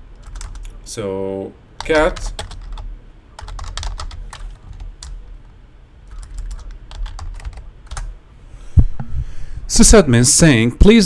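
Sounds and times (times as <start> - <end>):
computer keyboard typing: 0.2 - 0.8, 1.8 - 5.2, 6.1 - 8.1.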